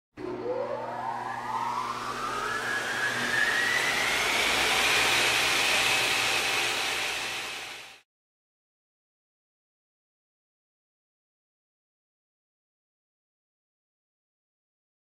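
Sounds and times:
rising whoosh: 0.2s - 5.7s
low hum: 0.2s - 5.9s.

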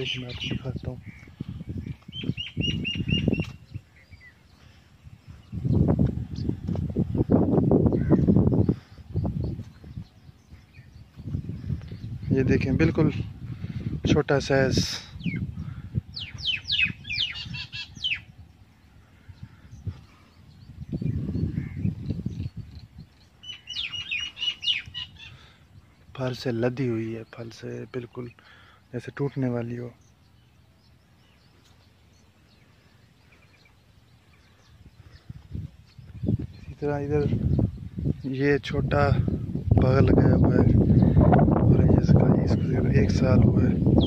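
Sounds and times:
small bird chirping: 0.0s - 12.3s, 15.1s - 38.6s
low thuds on microphone: 5.8s - 7.0s.

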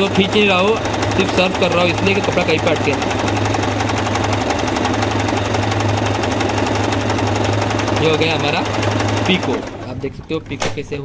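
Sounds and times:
sewing machine needle clatter: 0.0s - 10.8s
low motor hum: 0.0s - 11.0s.

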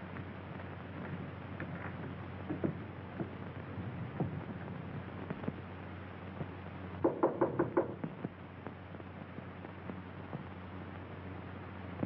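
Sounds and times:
film soundtrack hiss and hum: 0.0s - 12.0s
sharp knocks: 7.0s - 8.1s.

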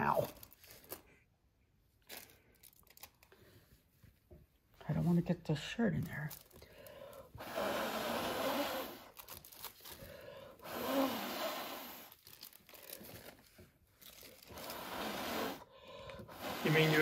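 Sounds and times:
person blowing air by mouth: 7.3s - 9.2s, 10.5s - 12.2s, 14.5s - 17.0s.

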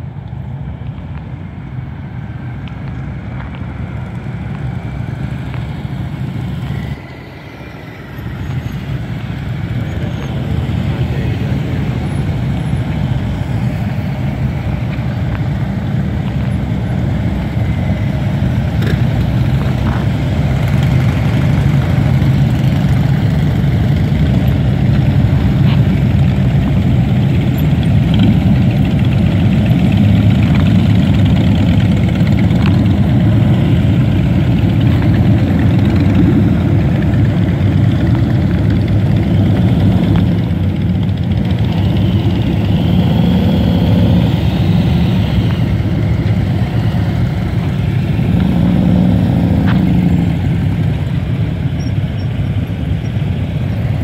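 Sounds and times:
motorcycles riding past: 3.4s - 54.0s.

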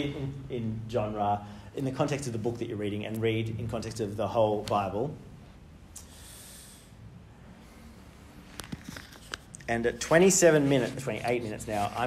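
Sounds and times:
mouth click: 5.9s - 6.2s
man breathing in: 6.0s - 8.2s.

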